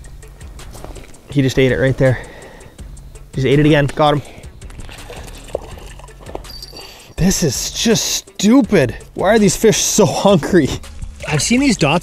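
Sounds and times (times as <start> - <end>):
fish slapping on ice: 4.7 - 6.5
fish flopping on wet ice: 4.7 - 7.0.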